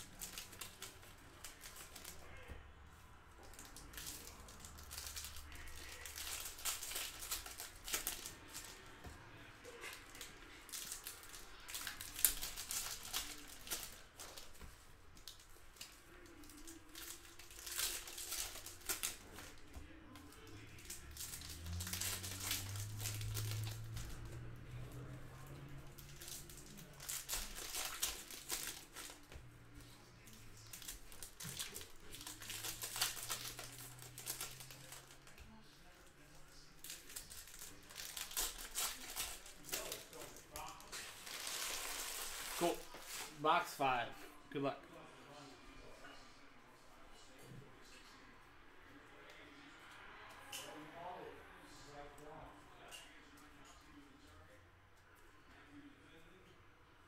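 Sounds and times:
foil wrappers tearing and crinkling: 0.0 - 2.5, 3.4 - 8.8, 9.7 - 14.6, 15.2 - 19.7, 20.4 - 24.3, 25.8 - 29.4, 30.2 - 35.4, 36.8 - 43.4.

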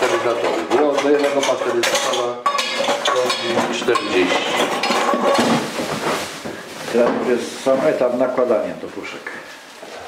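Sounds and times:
metal cans clinking together: 0.0 - 5.8.

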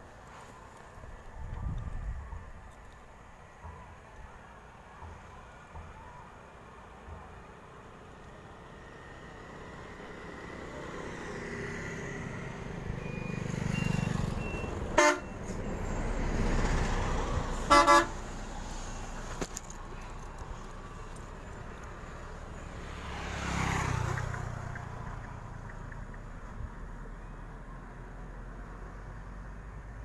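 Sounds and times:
motorbike passing: 8.6 - 30.0
vehicle horn toots: 13.8 - 15.5, 17.6 - 18.2.

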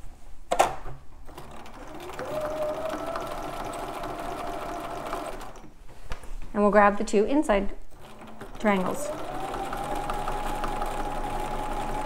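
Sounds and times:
sewing machine stitching: 1.3 - 5.7, 7.9 - 12.0.

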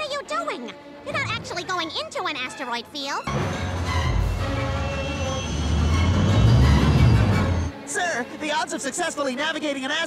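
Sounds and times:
orchestral score: 2.8 - 8.8
spaceship engine rumble: 3.3 - 7.7.

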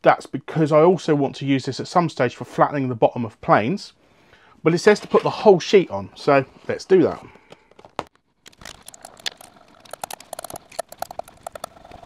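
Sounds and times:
hand roller clicking and crackling: 8.5 - 12.0.

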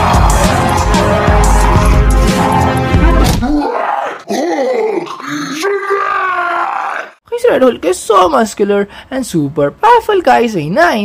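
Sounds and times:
man roaring in monster voice: 0.0 - 7.2.

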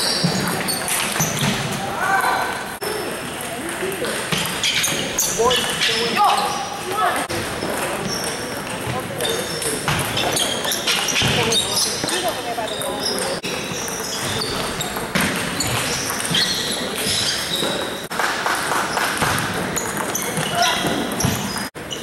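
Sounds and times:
table tennis balls clicking: 7.6 - 21.7.

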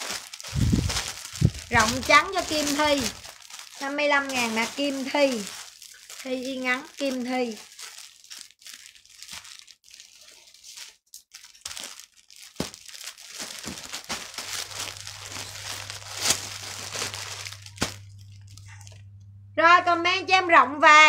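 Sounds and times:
plastic packaging crinkling: 0.0 - 19.2
low steady hum: 0.4 - 5.6, 14.3 - 21.0.

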